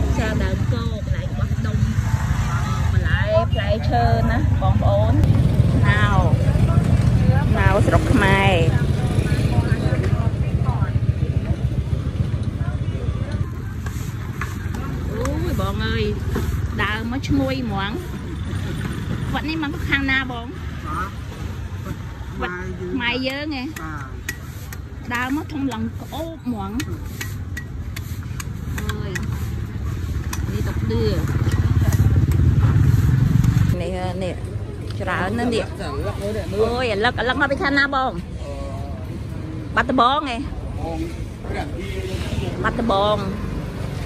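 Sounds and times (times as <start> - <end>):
low motorbike rumble: 0.0 - 24.3, 27.7 - 35.5
faint voices talking: 0.0 - 44.0.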